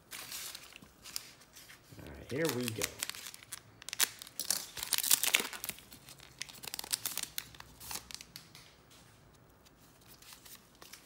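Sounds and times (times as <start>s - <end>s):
foil wrapper crinkling and tearing: 0.0s - 8.4s.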